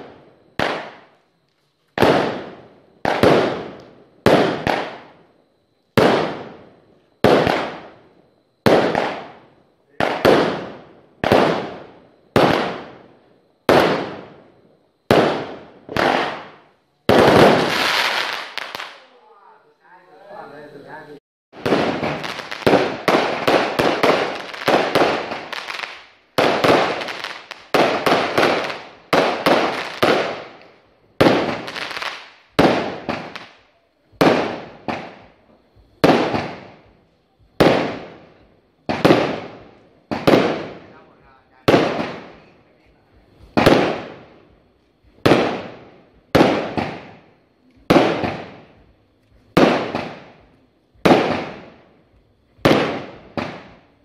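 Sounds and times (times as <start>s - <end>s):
fireworks bursting: 0.0s - 19.4s, 21.0s - 54.0s.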